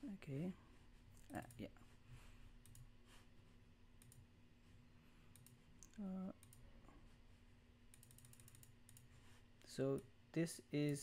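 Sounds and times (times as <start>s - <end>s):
low steady hum: 0.0s - 11.0s
computer mouse clicks: 2.6s - 2.9s, 4.0s - 4.3s, 5.3s - 6.6s, 7.9s - 9.1s.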